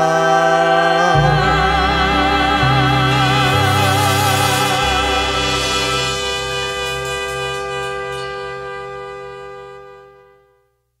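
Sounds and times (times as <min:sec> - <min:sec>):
band holding final chord: 0:01.1 - 0:10.4
horn section: 0:01.2 - 0:10.6.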